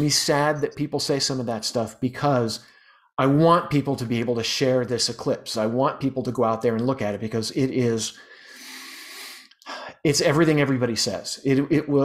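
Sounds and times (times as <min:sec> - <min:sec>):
man speaking: 0:00.0 - 0:12.0
man breathing in: 0:02.6 - 0:03.1, 0:08.2 - 0:10.0.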